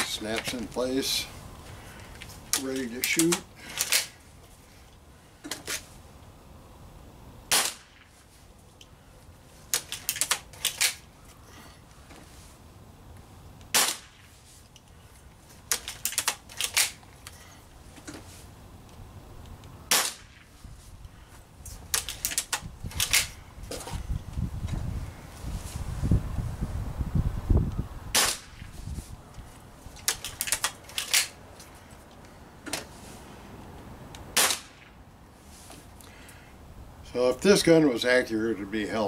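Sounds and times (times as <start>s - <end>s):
metallic clicks of rifle cocking: 2.2s - 4.2s, 9.7s - 11.1s, 15.7s - 17.4s, 21.9s - 23.4s, 29.9s - 31.4s
pellet rifle shots: 7.5s - 8.1s, 13.7s - 14.3s, 19.9s - 20.5s, 28.1s - 28.7s, 34.3s - 35.0s.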